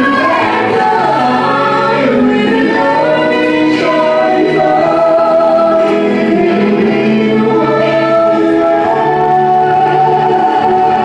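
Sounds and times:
amplified musical accompaniment: 0.0 - 11.0
woman singing: 0.0 - 11.0.

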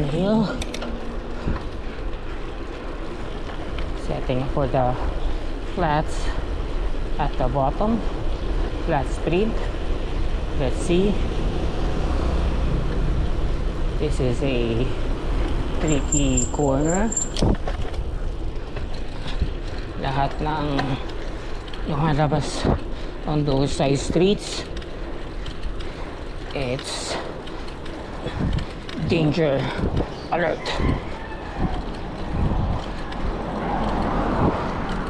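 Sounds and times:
bike tyre and wind rumble: 0.0 - 35.0
wind rushing over microphone: 28.1 - 35.0.

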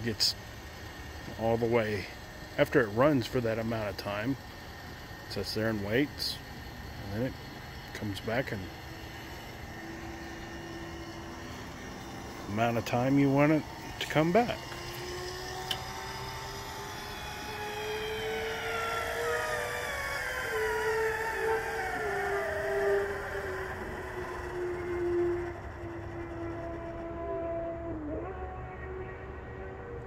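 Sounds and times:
electric actuator motor whine: 0.0 - 30.0.

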